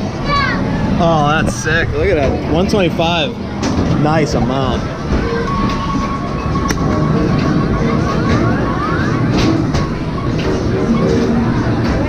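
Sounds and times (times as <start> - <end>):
low rumble of machines: 0.0 - 12.0.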